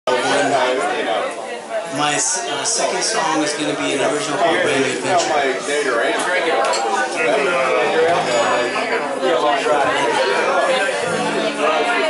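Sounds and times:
people chattering: 0.1 - 12.0.

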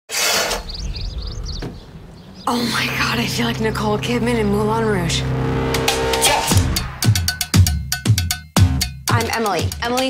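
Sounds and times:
small birds chirping: 0.2 - 5.2.

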